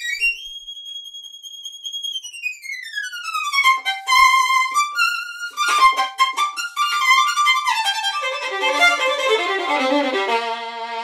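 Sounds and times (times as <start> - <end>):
solo violin high note: 3.2 - 11.0.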